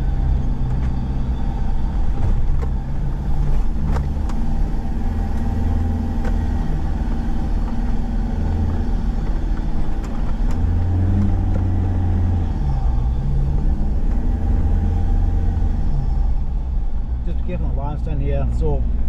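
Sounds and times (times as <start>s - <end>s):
vehicle engine running at low revs: 0.0s - 19.0s
vehicle knocks and rattles: 5.4s - 12.0s.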